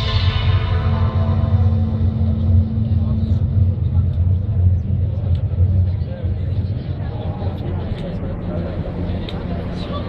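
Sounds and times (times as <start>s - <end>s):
deep steady rumble: 0.0s - 10.0s
faint crowd murmur: 0.0s - 10.0s.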